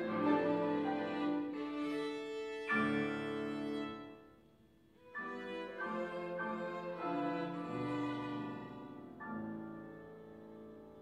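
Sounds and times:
violin and piano music: 0.0 - 11.0.

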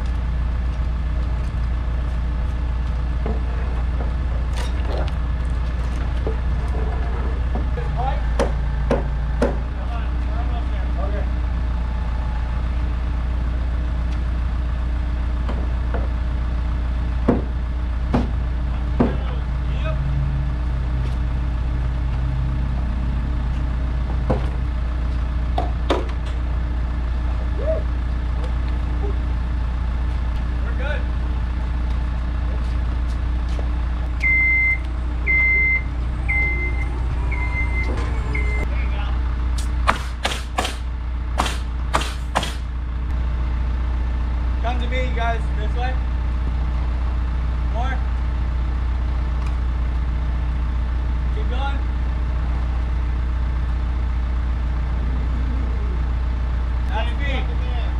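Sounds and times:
diesel truck engine running: 0.0 - 57.9
sharp knocks on framing: 8.4 - 9.6, 17.3 - 17.5, 18.1 - 18.4, 19.0 - 19.3, 39.8 - 42.6
motion alarm high beeps: 34.2 - 38.7.

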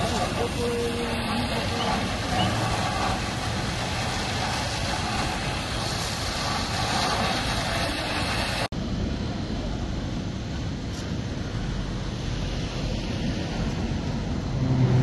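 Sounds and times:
faint voices: 0.0 - 3.2
fire hose spraying water: 0.0 - 8.7
engines running: 0.0 - 15.0
wind noise: 0.0 - 15.0.

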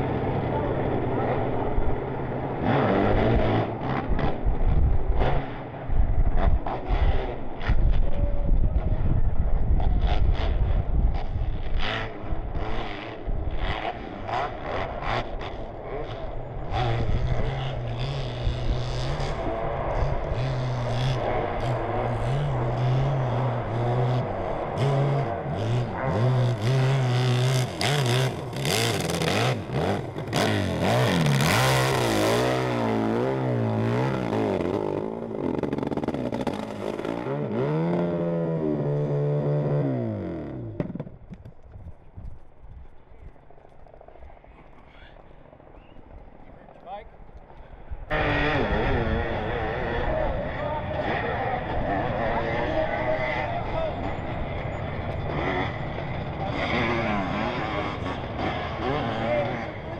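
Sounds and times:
motorcycle engine revving hard: 2.4 - 8.0, 9.8 - 41.0, 48.1 - 59.9.

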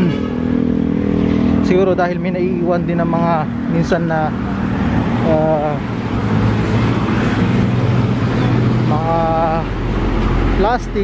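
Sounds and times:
road traffic with engine hum: 0.0 - 11.0.

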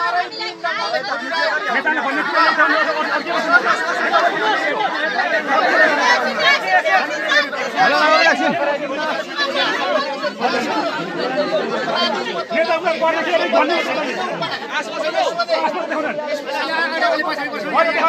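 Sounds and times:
crowd talking loudly: 0.0 - 18.0.

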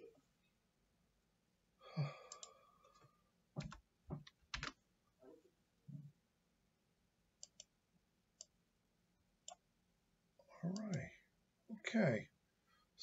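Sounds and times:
computer mouse clicking: 2.3 - 2.5, 7.4 - 7.7
keyboard keys tapping: 3.6 - 4.7.

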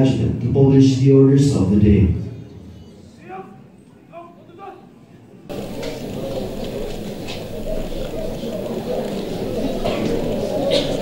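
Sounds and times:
open-air crowd noise: 0.0 - 11.0.

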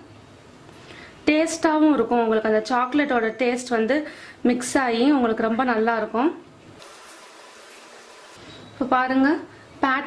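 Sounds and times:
faint room tone hiss: 0.0 - 10.0
woman speaking: 1.3 - 6.4, 8.8 - 10.0.

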